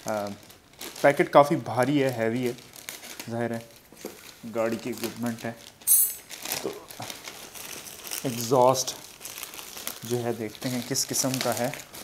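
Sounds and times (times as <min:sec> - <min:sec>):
plastic mailer bag crinkling: 0:00.0 - 0:12.0.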